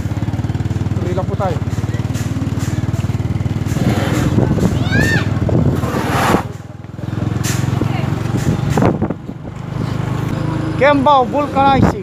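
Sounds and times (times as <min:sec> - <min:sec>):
small vehicle engine running: 0:00.0 - 0:11.9.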